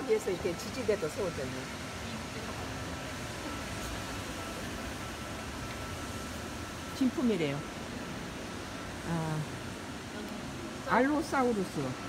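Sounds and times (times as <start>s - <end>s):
faint high steady tone: 0.0s - 12.0s
indoor hall background hiss: 0.0s - 12.0s.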